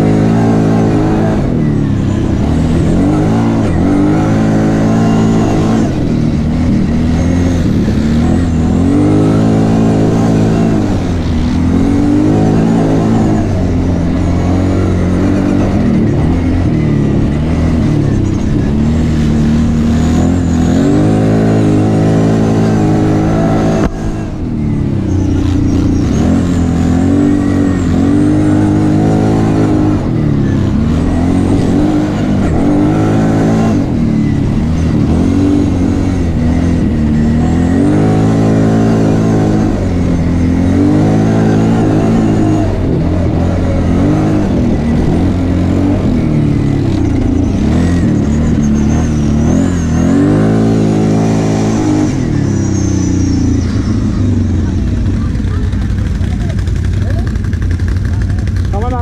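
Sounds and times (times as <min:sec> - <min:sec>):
quad engine revving: 0:00.0 - 0:59.0.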